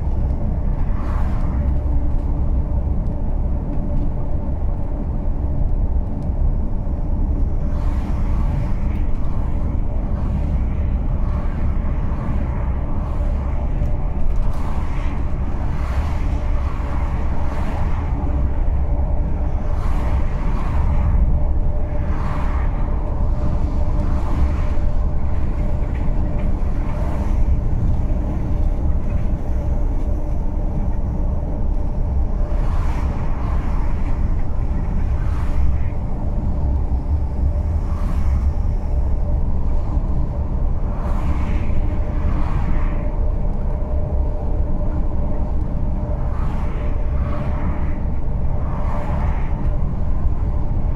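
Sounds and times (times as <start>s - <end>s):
passing vehicles whooshing: 0.0s - 50.9s
vehicle road rumble and engine hum: 0.0s - 50.9s.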